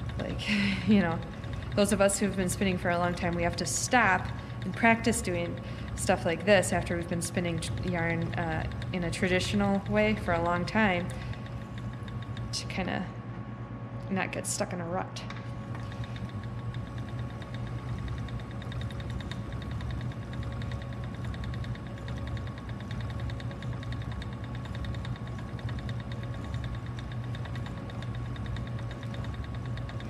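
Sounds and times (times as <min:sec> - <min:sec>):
rapid fine ticking: 0:00.0 - 0:12.6, 0:16.0 - 0:30.0
spinning wheel whirring: 0:00.0 - 0:13.0, 0:15.5 - 0:30.0.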